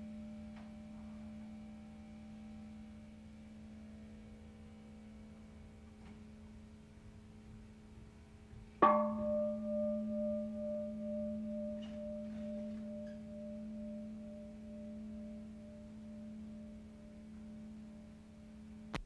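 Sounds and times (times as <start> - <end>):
steady low hum: 0.0 - 19.0
gong ringing: 8.8 - 18.9.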